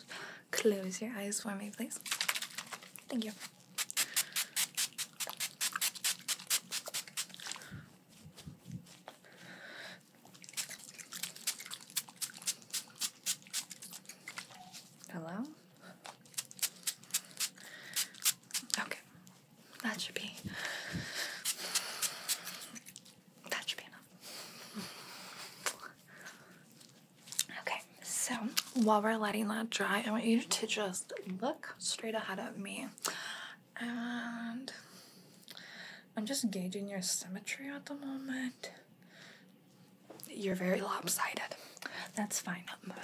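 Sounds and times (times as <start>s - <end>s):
spray bottle spritzing: 2.0s - 2.7s, 3.7s - 7.5s, 10.4s - 14.2s, 16.3s - 18.8s, 21.4s - 22.8s.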